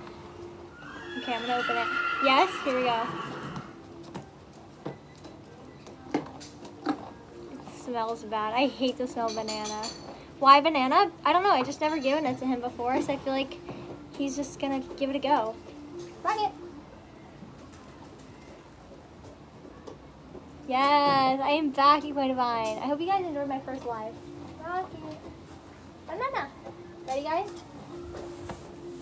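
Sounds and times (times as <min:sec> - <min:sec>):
low background noise: 0:00.0 - 0:29.0.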